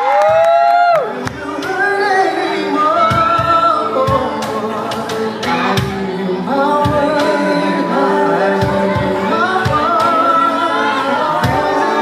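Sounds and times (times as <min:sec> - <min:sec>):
pop band with drum beat: 0:00.0 - 0:12.0
several voices singing: 0:00.8 - 0:12.0.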